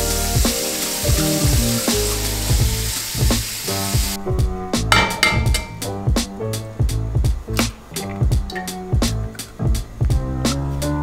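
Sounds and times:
faucet water pouring into pan: 0:00.0 - 0:04.2
background music: 0:00.0 - 0:11.0.

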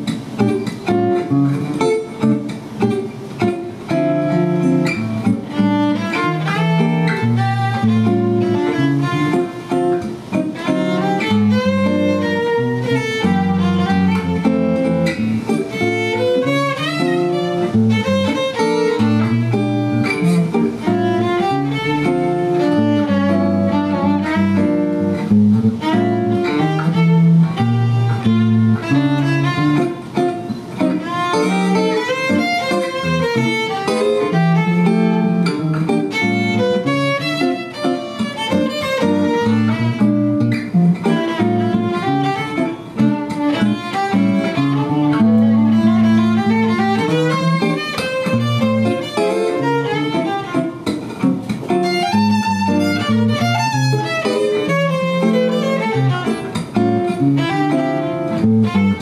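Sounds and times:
acoustic guitar accompaniment: 0:00.0 - 0:59.0
bowed violin melody: 0:00.0 - 0:59.0.

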